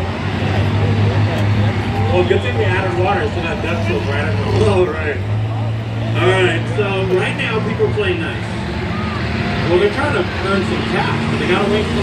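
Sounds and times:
race car engines droning: 0:00.0 - 0:12.0.

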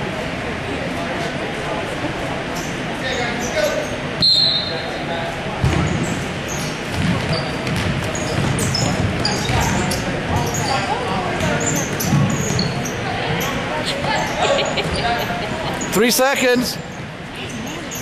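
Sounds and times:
sneakers squeaking: 0:02.5 - 0:05.0, 0:05.6 - 0:18.0
basketball bouncing on hardwood floor: 0:06.9 - 0:09.8.

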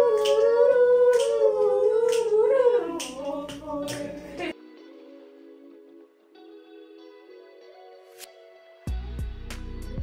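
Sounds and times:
person singing wavering tune: 0:00.0 - 0:05.3.

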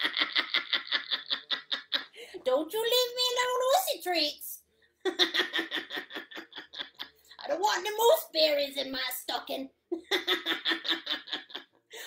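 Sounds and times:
woman laughing hard: 0:00.0 - 0:02.2, 0:05.1 - 0:07.2, 0:09.9 - 0:12.0.

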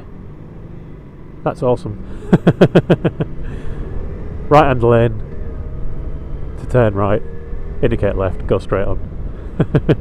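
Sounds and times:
low riding noise: 0:00.0 - 0:10.0
man laughing: 0:02.1 - 0:03.7, 0:09.4 - 0:10.0.

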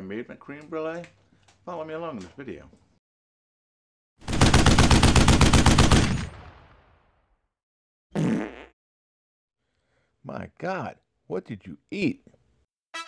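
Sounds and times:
machine-gun sound effect: 0:04.2 - 0:06.4
fart sound effect: 0:08.2 - 0:08.8.

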